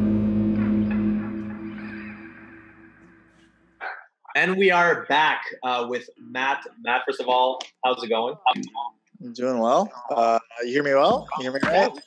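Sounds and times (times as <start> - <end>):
electric guitar and bass chord ringing: 0.0 - 3.2.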